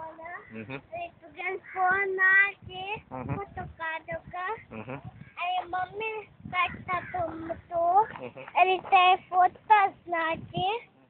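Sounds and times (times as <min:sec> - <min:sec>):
young child singing: 0:05.4 - 0:10.9.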